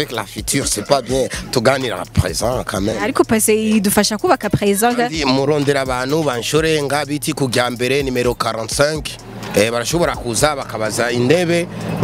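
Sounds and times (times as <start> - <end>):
man talking: 0.0 - 3.1, 4.9 - 11.7.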